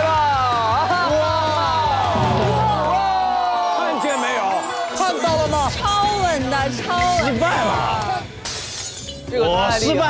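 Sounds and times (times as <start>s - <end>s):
glass shattering: 8.4s - 9.3s.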